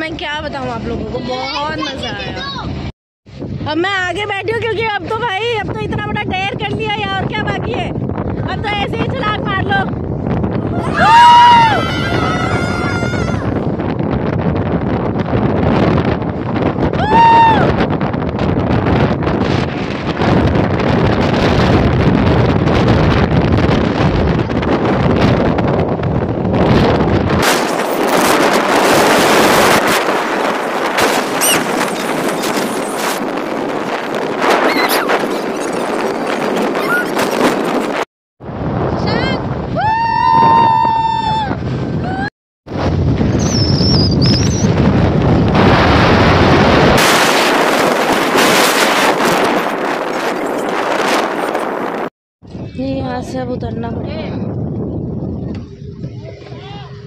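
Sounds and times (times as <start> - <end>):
wind buffeting microphone: 0.0 - 57.0
speedboat rushing over sea: 5.9 - 52.0
person crying out: 10.6 - 13.5.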